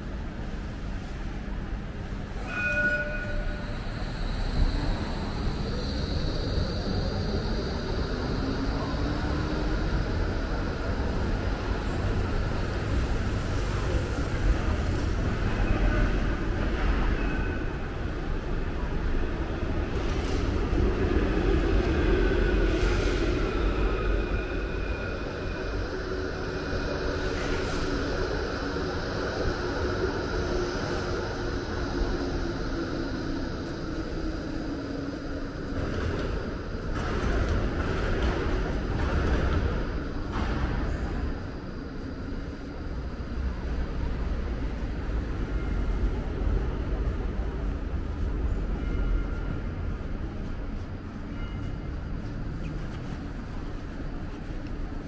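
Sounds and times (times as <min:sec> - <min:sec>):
rumble of passing cars and trams: 0:00.0 - 0:55.0.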